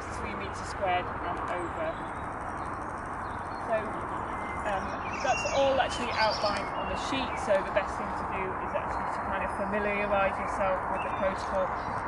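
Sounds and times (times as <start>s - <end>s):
woman speaking: 0.0s - 2.0s, 3.7s - 11.8s
outdoor background hiss: 0.0s - 12.0s.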